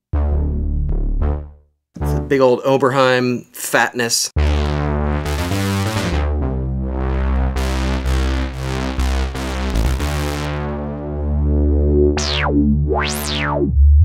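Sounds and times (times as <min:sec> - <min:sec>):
deep synth bass: 0:00.0 - 0:02.4, 0:04.4 - 0:14.0
synthesizer chords: 0:00.1 - 0:02.5, 0:04.4 - 0:14.0.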